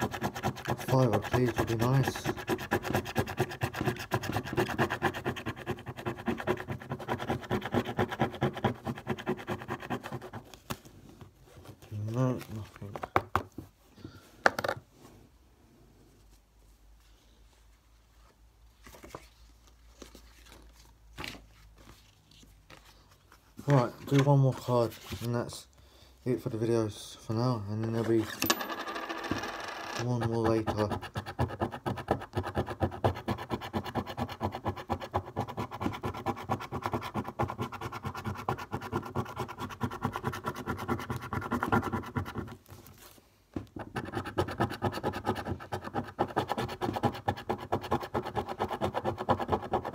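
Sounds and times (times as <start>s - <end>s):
coin scraping scratchcard: 0.0s - 10.4s, 28.0s - 31.7s
scratchcards crinkling: 18.7s - 25.4s
coin knocking on table: 28.4s - 30.0s.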